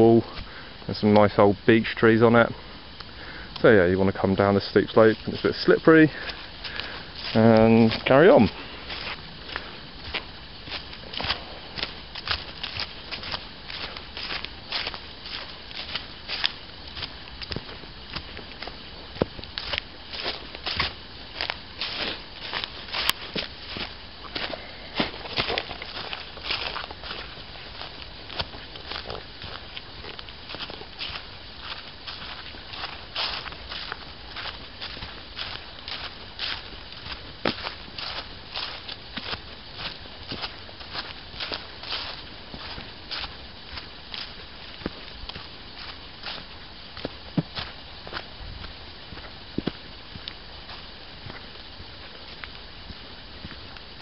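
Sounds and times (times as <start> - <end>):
footsteps on dry leaves: 1.9 - 54.0.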